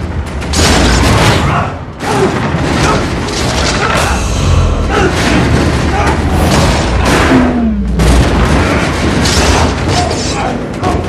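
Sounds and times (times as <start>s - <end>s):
deep booming effects: 4.0s - 9.6s.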